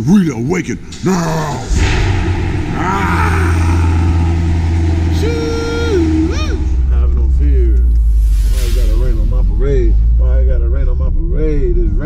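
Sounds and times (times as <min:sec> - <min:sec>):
car engine deep rumble: 0:00.0 - 0:12.0
man calling out: 0:05.1 - 0:07.4.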